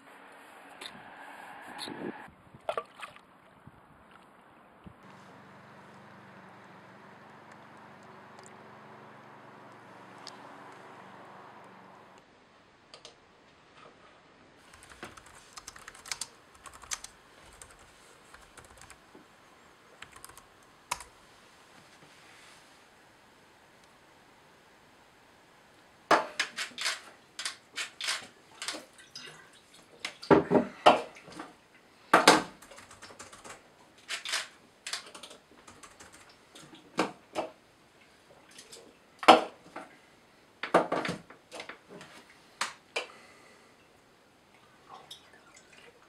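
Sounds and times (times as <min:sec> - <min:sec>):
typing on laptop keyboard: 0:14.7 - 0:19.0, 0:20.0 - 0:21.1, 0:32.6 - 0:36.4.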